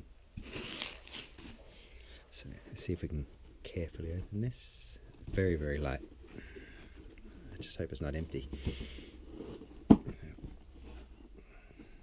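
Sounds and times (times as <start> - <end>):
cardboard box being handled: 0.4 - 1.7, 5.2 - 11.4.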